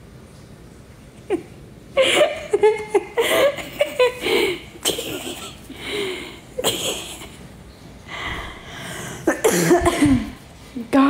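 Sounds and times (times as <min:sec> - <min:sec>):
woman coughing: 0:03.2 - 0:05.7, 0:06.6 - 0:07.4, 0:09.2 - 0:10.4.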